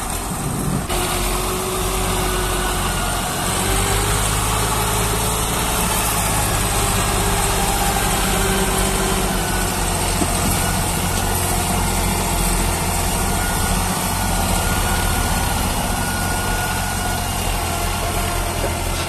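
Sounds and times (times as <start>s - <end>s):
tractor diesel engine running: 0.0s - 19.0s.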